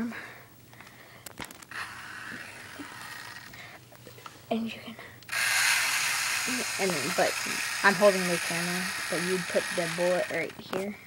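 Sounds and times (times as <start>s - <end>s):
plastic parts rustling: 0.7s - 2.3s.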